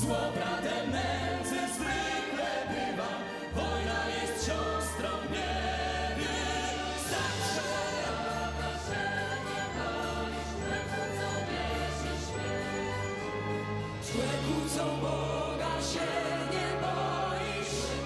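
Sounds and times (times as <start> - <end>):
mixed choir singing: 0.0 - 18.0
symphony orchestra: 0.0 - 18.0.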